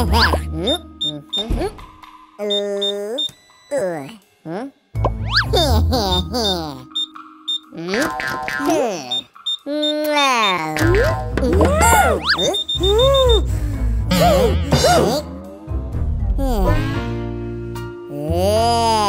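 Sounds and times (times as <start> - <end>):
upbeat children's music: 0.0 - 19.0
cartoon character gibberish: 2.4 - 6.9, 7.7 - 13.4
short high beeps: 12.2 - 13.4.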